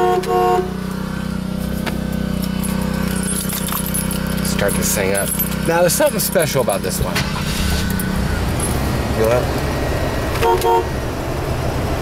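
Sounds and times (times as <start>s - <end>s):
car horn toots: 0.0s - 1.0s, 10.3s - 11.0s
car engine idling: 0.0s - 12.0s.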